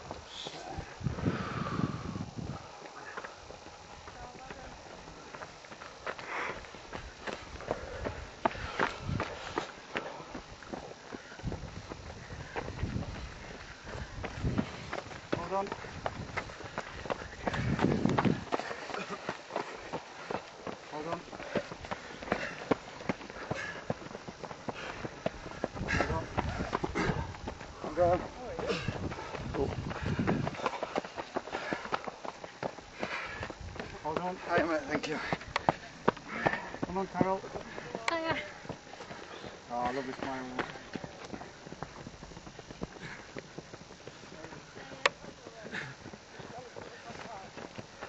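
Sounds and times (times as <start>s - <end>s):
footsteps on dirt and stone: 2.6s - 48.0s.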